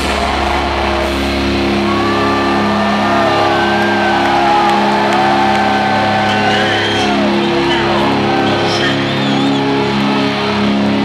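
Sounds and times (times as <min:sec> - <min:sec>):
crowd shouting and whooping: 0:00.0 - 0:11.0.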